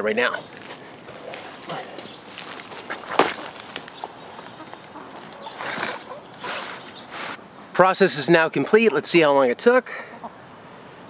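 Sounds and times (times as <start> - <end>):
scuffing footsteps: 0.5 - 7.4.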